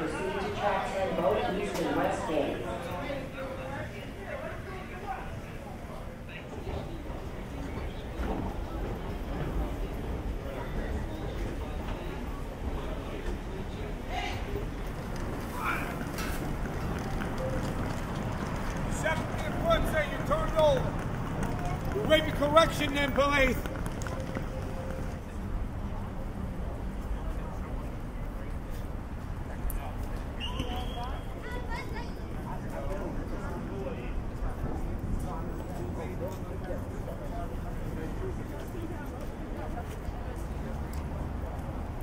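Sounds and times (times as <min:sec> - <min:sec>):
city street rumble: 0:00.0 - 0:42.0
faint voices of passers-by: 0:00.0 - 0:42.0.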